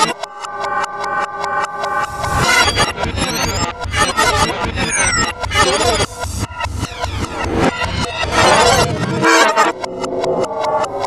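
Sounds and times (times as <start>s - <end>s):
warped pitched cartoon tones: 0.0s - 11.0s.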